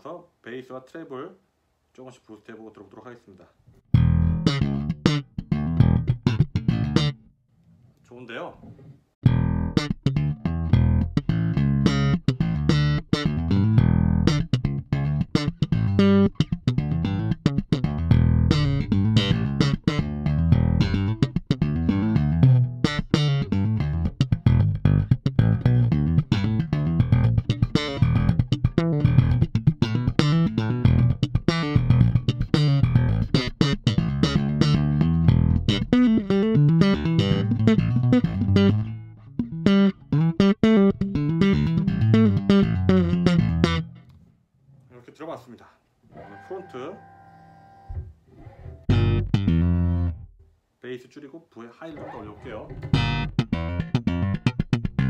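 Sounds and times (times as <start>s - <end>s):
electric bass guitar playing: 3.9s - 7.3s, 9.2s - 44.1s, 46.2s - 50.4s, 52.0s - 55.0s.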